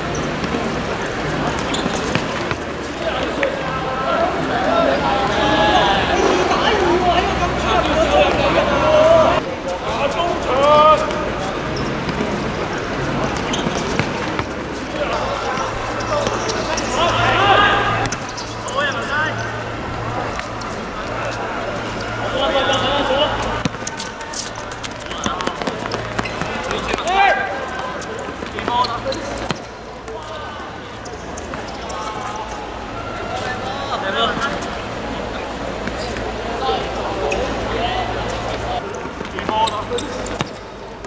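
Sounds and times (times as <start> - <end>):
players shouting: 0.0 - 40.6.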